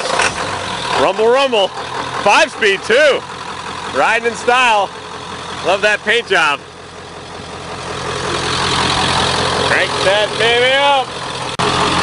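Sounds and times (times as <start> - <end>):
diesel engine idling: 0.0 - 12.0.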